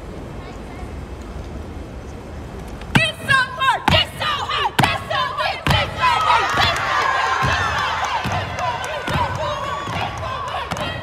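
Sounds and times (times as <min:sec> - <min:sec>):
crowd noise: 0:00.0 - 0:11.0
young women chanting in unison: 0:03.0 - 0:11.0.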